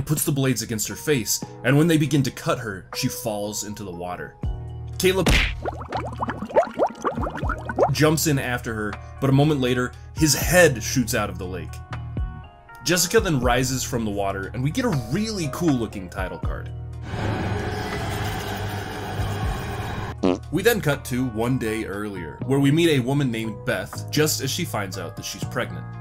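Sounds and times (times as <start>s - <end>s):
water bubbling and gurgling: 5.3s - 8.0s.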